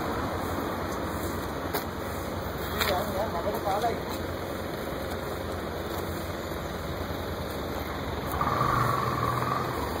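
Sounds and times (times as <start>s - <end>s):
v-twin engine idling: 0.0s - 10.0s.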